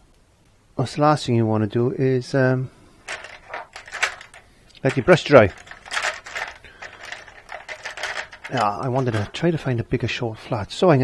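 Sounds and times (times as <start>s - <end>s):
painting gear clicking and scraping: 3.1s - 9.5s.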